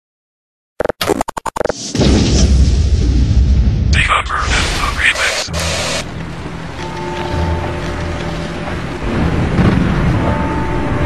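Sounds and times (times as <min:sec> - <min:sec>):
record scratching: 0:00.8 - 0:01.9, 0:04.0 - 0:06.0.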